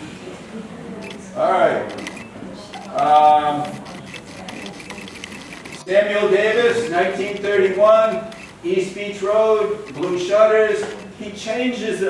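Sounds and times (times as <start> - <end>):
rapid mechanical clicking: 1.9 - 11.2.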